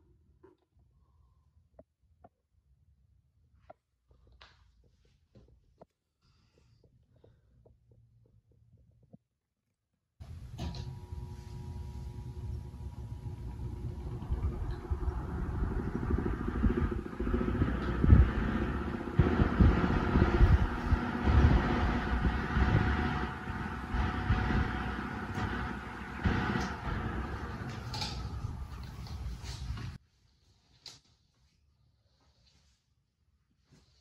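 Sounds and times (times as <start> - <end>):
electric fan blade whir: 10.2 - 30.0
fan airflow buffeting microphone: 10.2 - 30.0.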